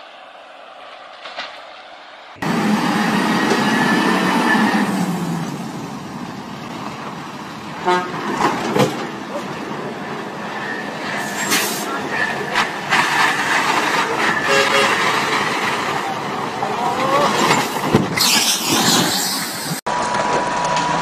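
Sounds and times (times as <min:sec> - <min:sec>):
truck diesel engine running: 0:02.4 - 0:18.0
horn toot: 0:07.8 - 0:08.4, 0:14.3 - 0:15.2.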